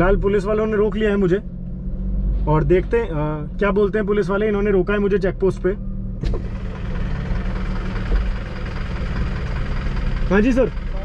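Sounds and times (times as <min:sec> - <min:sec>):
car engine idling: 0:02.6 - 0:11.0.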